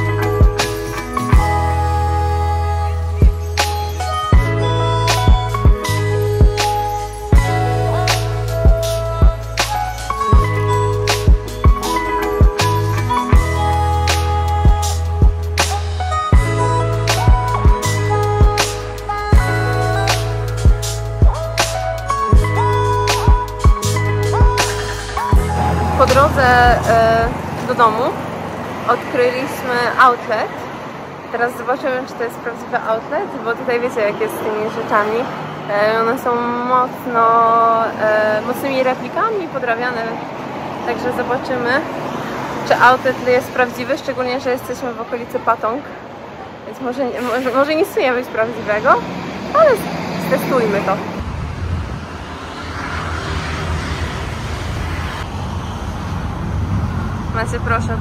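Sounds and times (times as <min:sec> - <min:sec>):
background music: 0:00.0 - 0:28.2
street traffic: 0:00.0 - 0:58.0
vehicle passing: 0:00.0 - 0:58.0
woman talking: 0:25.8 - 0:28.2, 0:28.9 - 0:30.6, 0:31.3 - 0:40.2, 0:40.9 - 0:41.9, 0:42.6 - 0:45.9, 0:46.6 - 0:51.1, 0:57.3 - 0:58.0.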